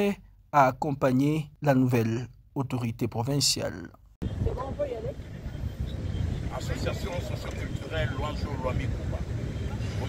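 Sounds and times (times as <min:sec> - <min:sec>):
wind buffeting microphone: 0:04.2 - 0:10.0.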